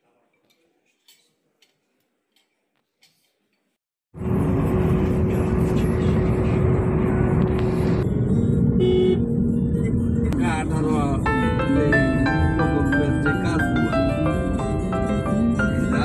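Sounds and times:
car road and engine noise: 4.2 - 16.0.

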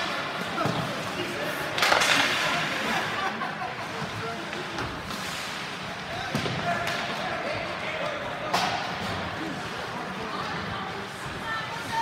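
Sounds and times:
voices in ice rink: 0.0 - 12.0
hockey stick hitting puck: 1.6 - 2.7, 4.5 - 7.2, 8.4 - 9.2.

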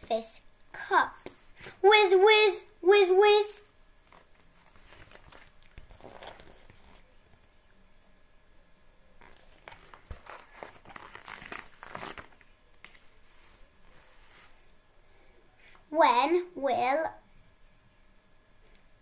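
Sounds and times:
book pages rustling: 1.1 - 1.6, 4.0 - 7.5, 9.2 - 14.7.

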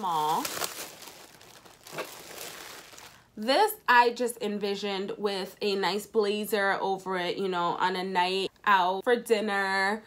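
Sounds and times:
plastic bag crinkling: 0.0 - 3.3.

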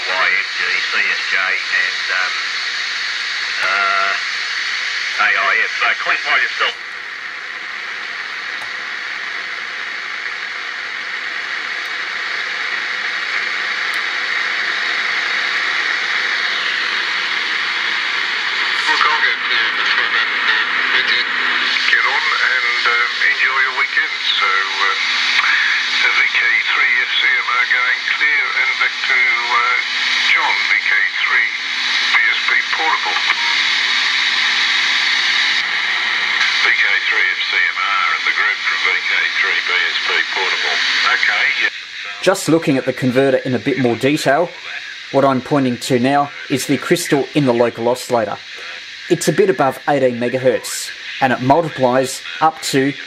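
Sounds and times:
radio operator's voice: 0.0 - 6.8, 17.8 - 33.8, 36.4 - 53.0
radio speaker hiss: 0.0 - 53.0.

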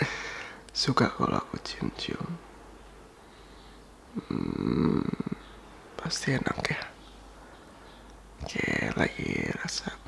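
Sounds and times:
man's deep creaky hum: 4.1 - 5.6.

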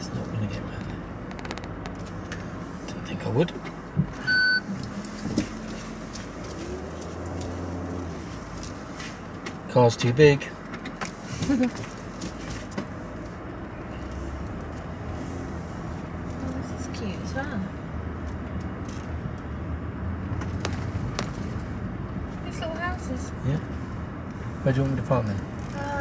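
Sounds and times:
car engine and road noise: 0.0 - 26.0.

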